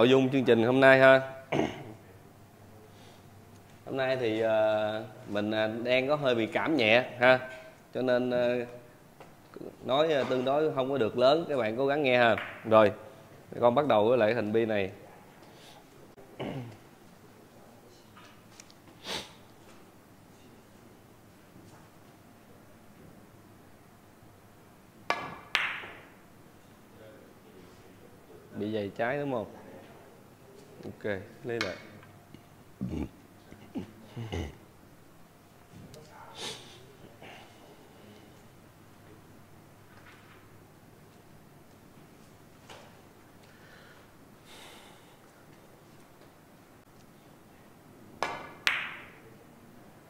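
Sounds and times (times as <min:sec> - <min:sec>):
billiard balls clacking: 0:12.2 - 0:12.8, 0:25.1 - 0:26.2, 0:48.2 - 0:49.2
cue tip striking ball: 0:12.3 - 0:12.7, 0:25.1 - 0:26.2, 0:48.2 - 0:49.2.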